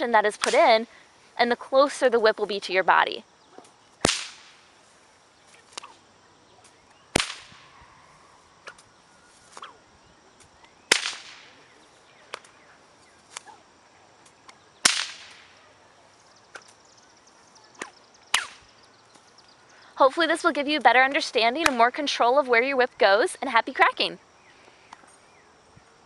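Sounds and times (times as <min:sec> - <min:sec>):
whip cracking: 0:00.4 - 0:00.8, 0:03.6 - 0:04.7, 0:05.6 - 0:06.0, 0:06.6 - 0:07.8, 0:08.6 - 0:08.9, 0:09.5 - 0:09.8, 0:10.9 - 0:11.6, 0:12.3 - 0:12.6, 0:13.3 - 0:13.6, 0:14.2 - 0:15.6, 0:17.8 - 0:18.7.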